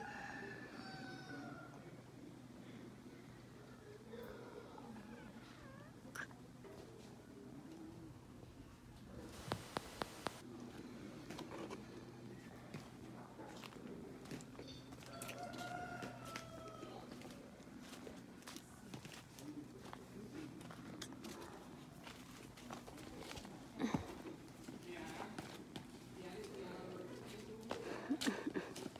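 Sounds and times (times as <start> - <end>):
faint indistinct voices: 0.0 - 28.9.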